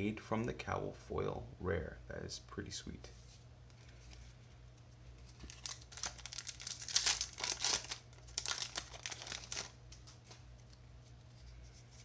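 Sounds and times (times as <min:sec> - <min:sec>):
foil wrapper tearing and crinkling: 0:05.3 - 0:10.2.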